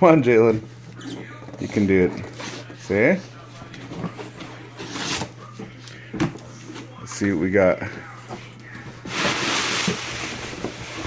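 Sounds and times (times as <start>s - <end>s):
cardboard flaps rustling scrape: 9.0s - 11.0s.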